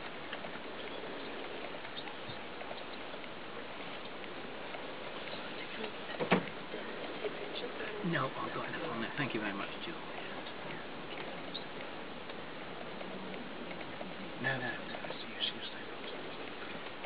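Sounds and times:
faint ticks: 0.0 - 6.0, 8.7 - 17.0
outdoor background hiss: 0.0 - 17.0.

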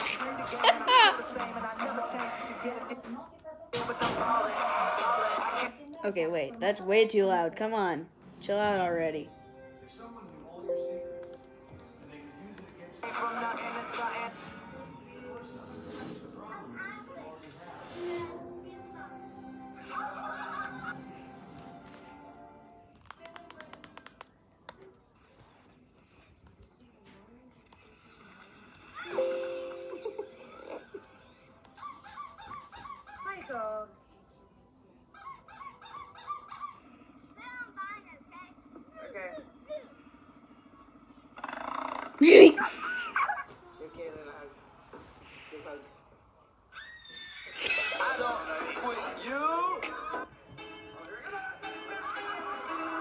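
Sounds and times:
music through a speaker: 0.0 - 3.1, 12.7 - 14.8
voices through a speaker: 0.0 - 6.9, 12.3 - 14.6
music with voices from speaker: 0.0 - 24.2, 48.3 - 53.0.

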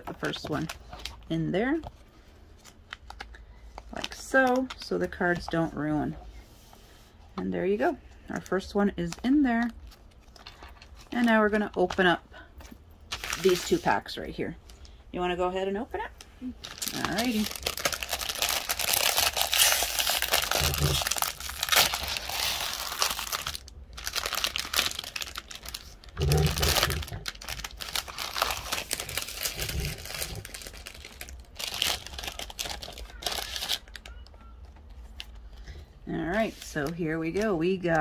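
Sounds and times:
plastic wrapper tearing and crinkling: 0.0 - 1.3, 2.6 - 5.5, 9.1 - 12.0, 13.1 - 13.9, 16.6 - 35.6.

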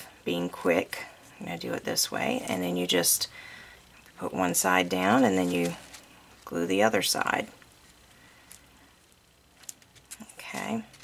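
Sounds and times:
faint ticks of handling: 9.5 - 11.0.

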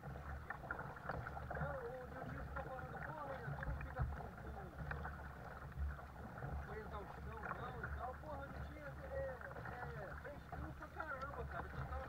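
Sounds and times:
paddle splashing water: 0.0 - 12.0.

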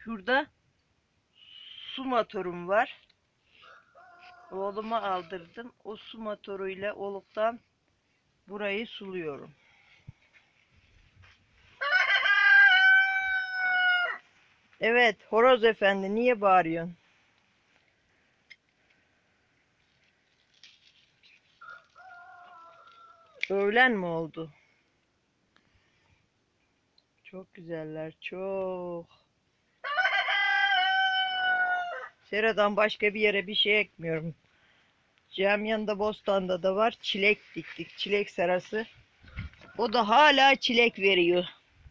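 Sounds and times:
rooster crowing: 3.6 - 4.6, 11.8 - 14.2, 21.6 - 23.4, 29.8 - 32.2.

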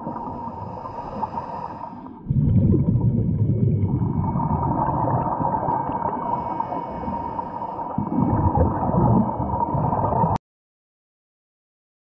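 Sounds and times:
regulator bubbling underwater: 0.0 - 10.4.

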